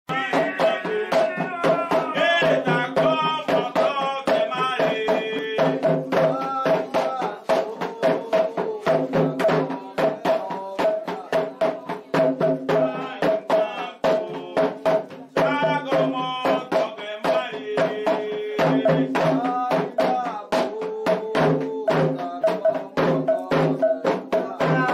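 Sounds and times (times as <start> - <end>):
hand drums playing fast rhythm: 0.1 - 24.9
voices singing a chant: 0.1 - 24.9.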